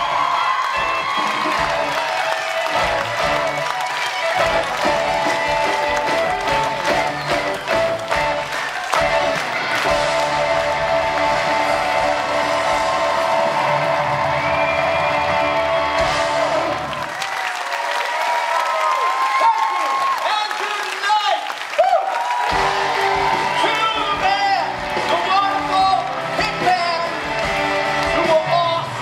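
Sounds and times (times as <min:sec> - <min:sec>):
audience applauding: 0:00.0 - 0:29.0
loud music with sustained chords: 0:08.0 - 0:17.0.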